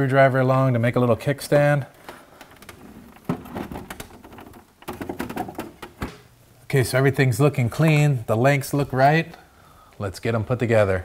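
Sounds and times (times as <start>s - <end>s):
plastic housing knocks and clicks: 3.2s - 6.2s.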